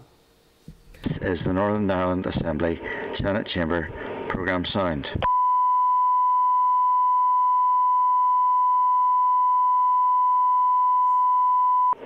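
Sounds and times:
steady sine test tone: 5.2 - 12.0.

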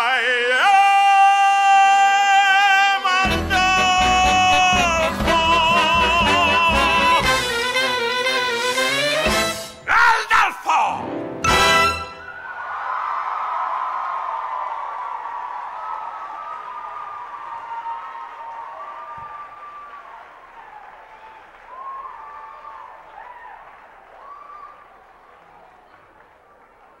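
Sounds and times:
whoops and shouts: 12.2 - 24.9
audience clapping: 12.4 - 27.0.

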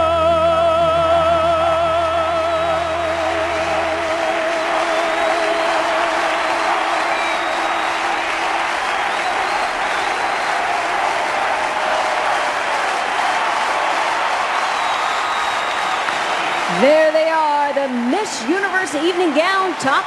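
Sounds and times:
singer holding wavering note: 0.0 - 6.7
audience applauding: 2.0 - 20.0.

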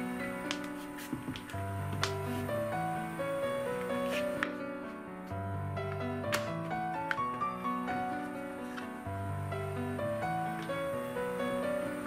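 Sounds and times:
gentle instrumental music: 0.0 - 12.0.

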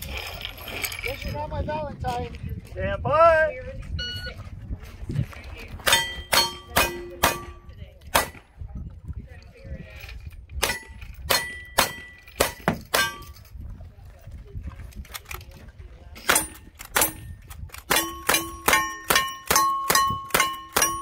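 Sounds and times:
steel plate ringing: 5.9 - 7.7, 17.9 - 21.0.

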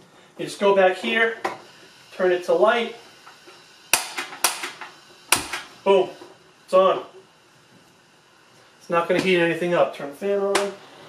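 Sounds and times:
heater control clicks: 3.2 - 5.7, 10.4 - 10.8.

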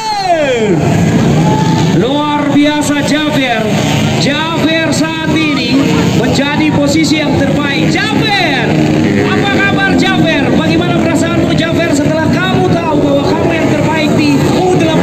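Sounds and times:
dirt bike engines revving: 0.0 - 15.0
voices: 0.0 - 15.0.

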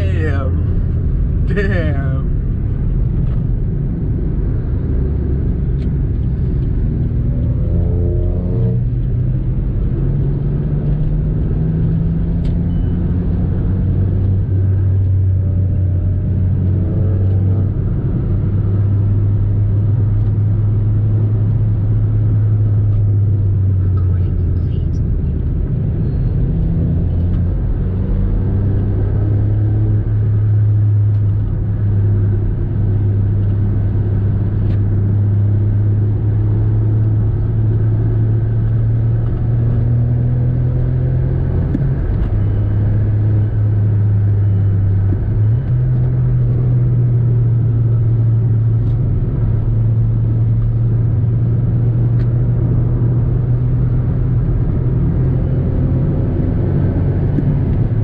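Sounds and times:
car engine and road drone: 0.0 - 58.0.

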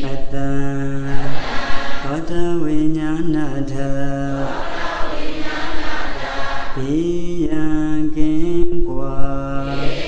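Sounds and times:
man chanting into microphone: 0.0 - 4.6, 6.7 - 10.0.

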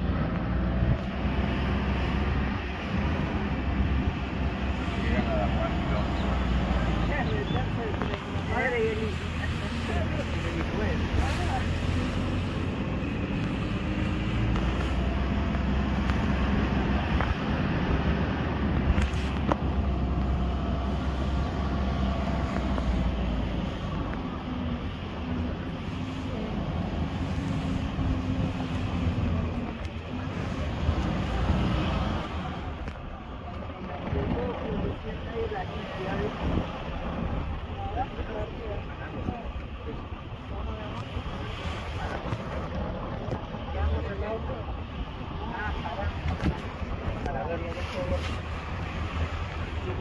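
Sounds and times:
off-road vehicle engine rumble: 0.0 - 50.0.

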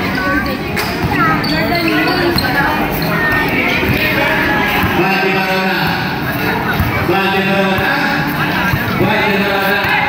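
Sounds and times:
voices shouting and talking: 0.0 - 10.0
basketball bouncing on concrete: 0.8 - 2.6, 3.2 - 5.2, 6.7 - 10.0.

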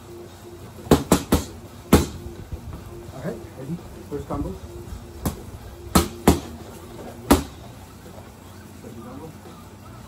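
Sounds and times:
boxing gloves smacking: 0.9 - 2.2, 5.2 - 6.6, 7.2 - 7.6.

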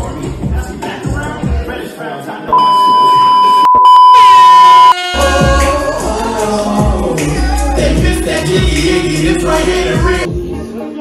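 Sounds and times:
music: 0.0 - 2.5, 5.0 - 11.0
steady test-pattern beep: 2.5 - 5.0.

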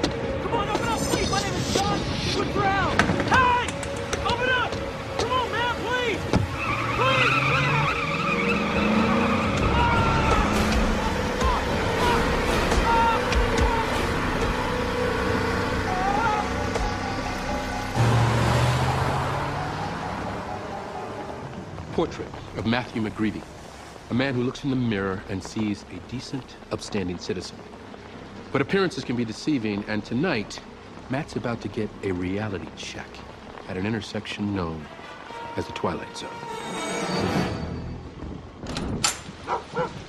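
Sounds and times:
tires squealing: 0.0 - 22.1
dramatic music: 0.0 - 22.4
car engine: 3.0 - 21.9
man shouting: 9.6 - 14.2, 15.9 - 16.6.

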